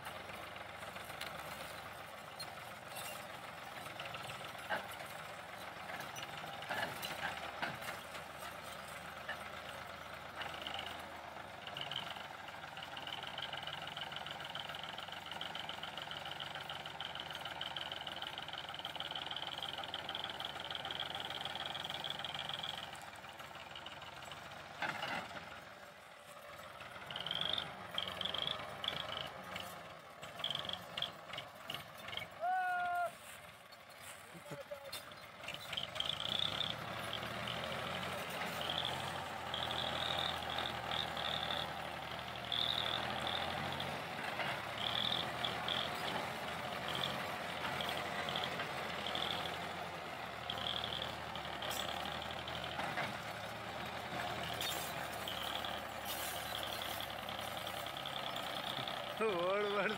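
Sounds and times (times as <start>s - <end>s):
tractor engine under load: 0.0s - 59.9s
high-pitched squeaks: 54.4s - 57.9s.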